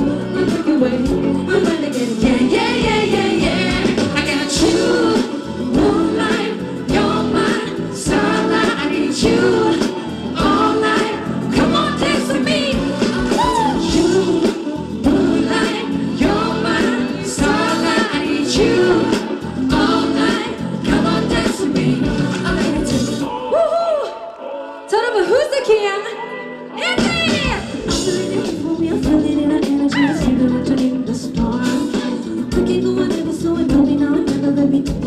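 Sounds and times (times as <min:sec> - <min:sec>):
steady drum beat: 0:00.0 - 0:23.3, 0:27.0 - 0:35.0
live pop band through speakers: 0:00.0 - 0:35.0
vocalists singing: 0:00.0 - 0:35.0.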